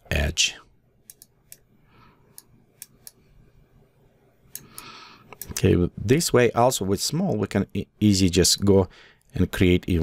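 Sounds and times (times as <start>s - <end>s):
computer mouse clicks: 1.0s - 1.7s, 2.3s - 3.2s, 4.5s - 5.6s.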